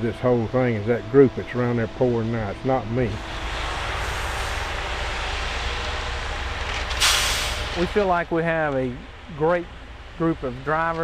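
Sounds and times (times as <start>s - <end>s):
low engine rumble: 0.0s - 11.0s.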